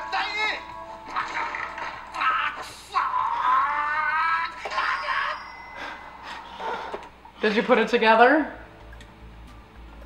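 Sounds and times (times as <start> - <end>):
man shouting: 0.0 - 0.6, 2.2 - 5.4.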